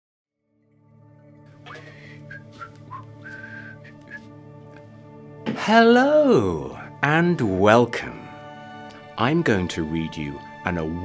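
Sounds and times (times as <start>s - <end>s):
ambient music drone: 0.6s - 11.0s
man whistling a tune: 1.7s - 4.4s.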